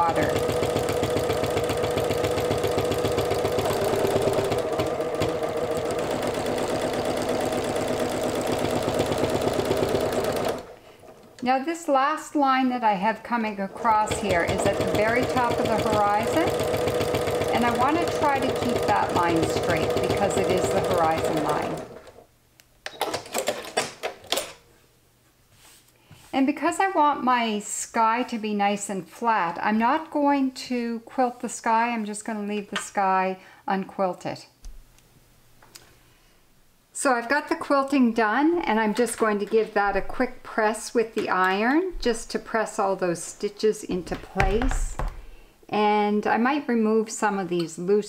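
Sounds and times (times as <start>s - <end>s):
sewing machine motor whine: 0.0s - 11.3s, 13.8s - 22.2s
sewing machine needle strokes: 0.0s - 11.3s, 13.8s - 22.2s.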